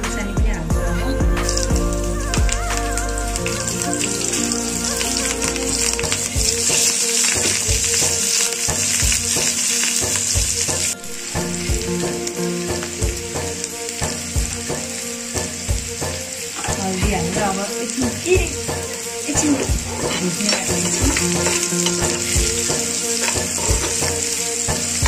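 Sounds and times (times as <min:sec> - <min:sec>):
chillies sizzling in hot oil: 0:01.4 - 0:25.0.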